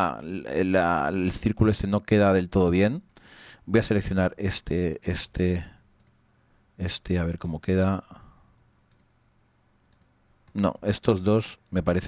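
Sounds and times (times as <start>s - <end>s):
faint computer mouse clicks: 6.0s - 6.2s, 8.6s - 9.2s, 9.9s - 10.6s.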